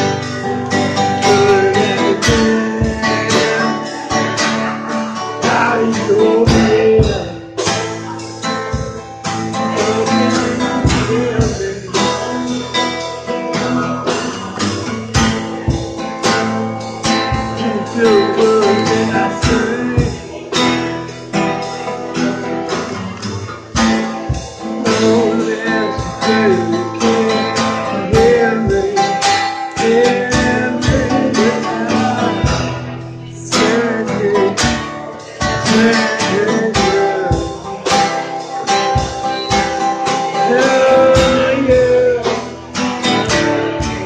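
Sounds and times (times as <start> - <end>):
drums: 0.0 - 44.0
person singing: 0.0 - 44.0
strummed acoustic guitar: 0.0 - 44.0.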